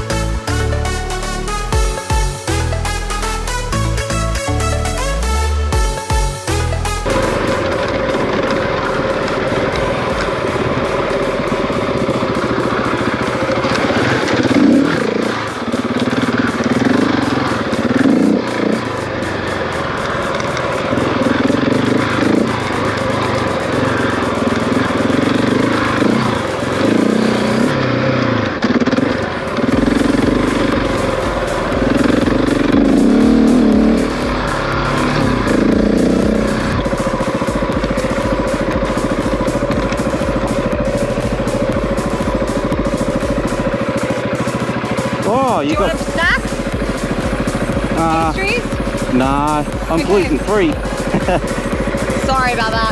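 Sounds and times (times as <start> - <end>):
motorcycle engine running: 0.0 - 52.9.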